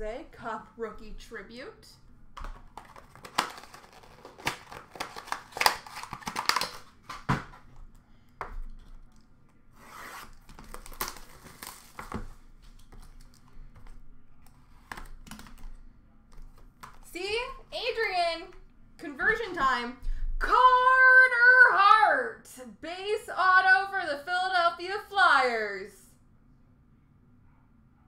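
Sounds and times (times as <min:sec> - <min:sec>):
wrapping and cardboard tearing: 0:02.8 - 0:07.6, 0:09.7 - 0:13.4.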